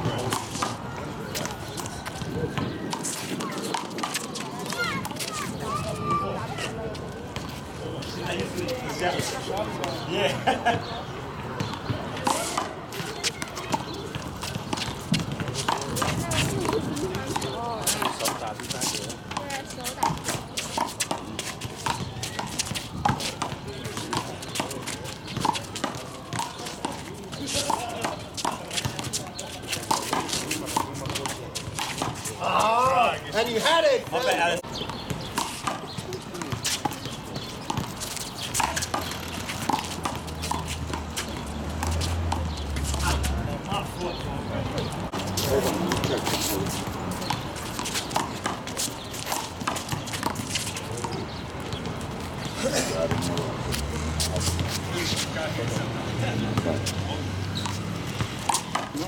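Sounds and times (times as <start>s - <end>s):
sneakers scuffing on court: 0.0s - 10.8s, 11.5s - 59.0s.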